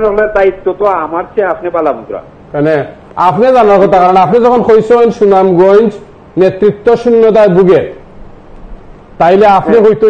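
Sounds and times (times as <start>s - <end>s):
man speaking: 0.0s - 8.0s, 9.2s - 10.0s.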